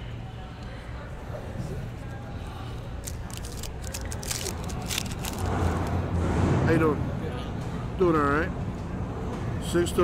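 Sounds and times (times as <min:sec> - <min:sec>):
background chatter: 0:00.0 - 0:10.0
plastic wrapper crinkling: 0:03.0 - 0:06.0.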